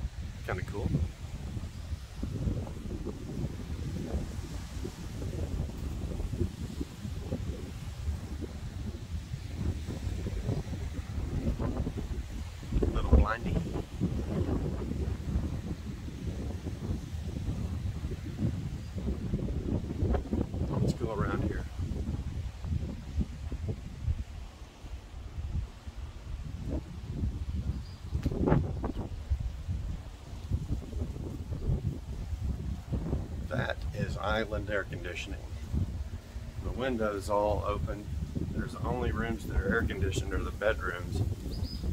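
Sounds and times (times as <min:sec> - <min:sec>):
wind buffeting microphone: 0:00.0 - 0:41.9.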